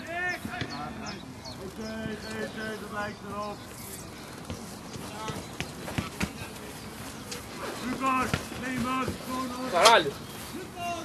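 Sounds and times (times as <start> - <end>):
football tapped with foot: 4.4 - 6.5.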